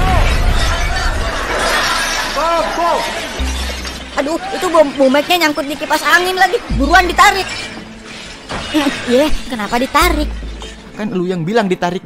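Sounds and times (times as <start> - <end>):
people shouting: 0.0 - 3.6, 4.2 - 5.0
glass shattering and crashing: 0.0 - 11.5.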